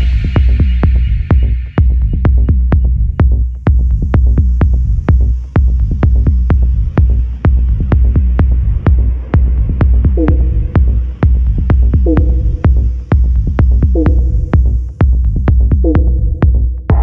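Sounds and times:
deep kick drum: 0.0 - 17.0.

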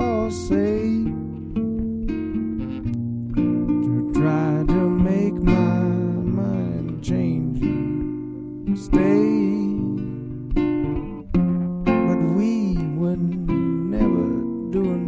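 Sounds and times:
acoustic guitar chords ringing: 0.0 - 15.0.

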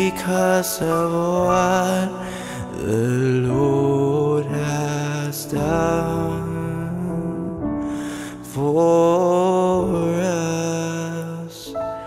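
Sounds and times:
man singing wordless melody: 0.0 - 12.0
piano chords: 0.0 - 12.0.

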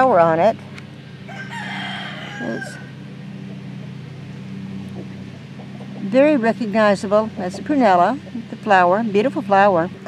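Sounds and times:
low hum: 0.0 - 10.0
rooster crowing: 1.2 - 3.1.

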